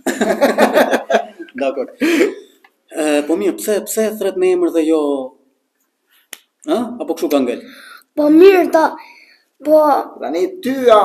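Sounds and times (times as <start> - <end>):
person speaking: 1.1 - 5.3
finger snap: 6.2 - 6.5.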